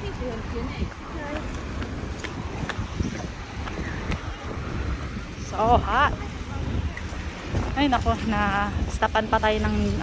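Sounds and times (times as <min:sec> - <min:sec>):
faint voices of passers-by: 0:00.0 - 0:10.0
traffic: 0:00.0 - 0:10.0
wind on microphone: 0:00.0 - 0:10.0.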